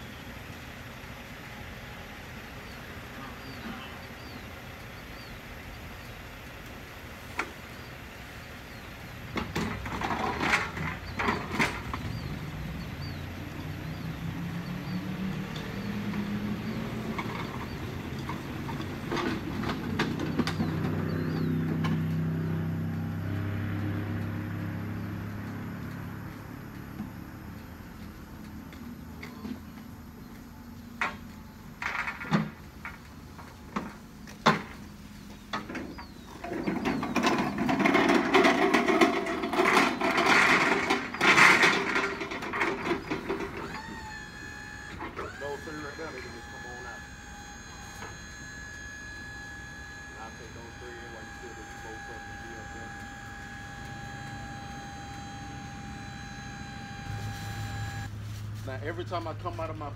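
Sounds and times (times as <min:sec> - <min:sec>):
metal cages clanking on liftgate: 0:35.6 - 0:44.0
high electric tone: 0:43.7 - 0:58.1.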